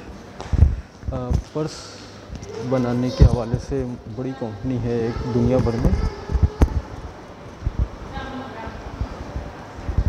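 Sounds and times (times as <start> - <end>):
low irregular thumps: 5.6 - 7.0.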